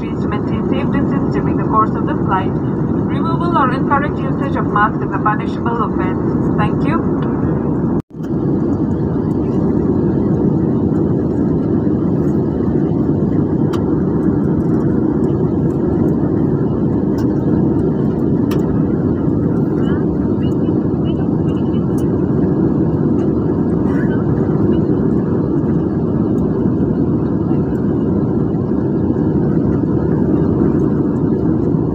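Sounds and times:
airliner cabin engine roar: 0.0s - 31.9s.

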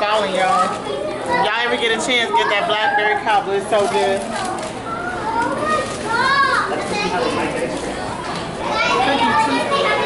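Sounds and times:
crowd talking in a hall: 0.0s - 10.0s
children's voices: 0.5s - 3.4s, 4.0s - 10.0s.

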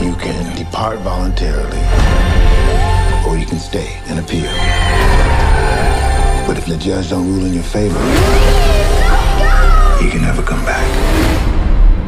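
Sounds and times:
engine revving loudly: 7.6s - 10.1s.

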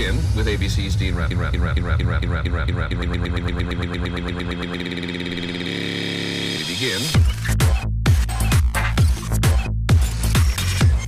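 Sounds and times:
pulsing synthesizer chord: 0.0s - 8.7s
deep bass: 0.0s - 11.0s.

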